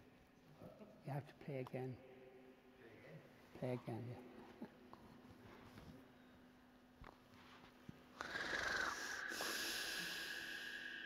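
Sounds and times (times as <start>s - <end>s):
sound system hiss: 8.2s - 11.0s
steady high whistling tone: 8.9s - 11.0s.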